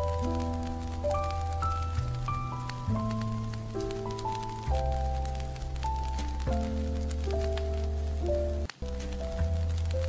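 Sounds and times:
jazz piano chords: 0.0 - 10.0
light rain-like ticks: 0.0 - 10.0.

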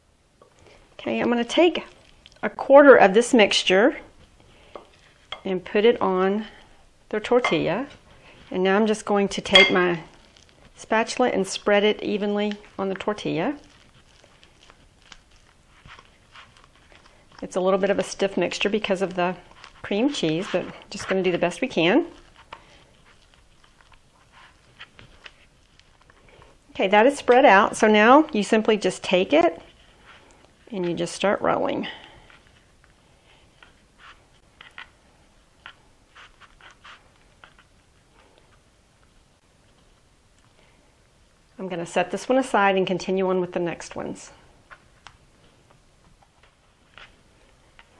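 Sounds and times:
spatula scraping and squishing: 3.4 - 38.7.

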